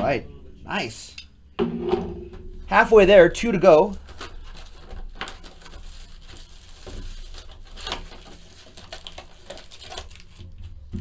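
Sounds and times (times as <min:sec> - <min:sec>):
plastic wrap crinkling and tearing: 0:03.8 - 0:11.0.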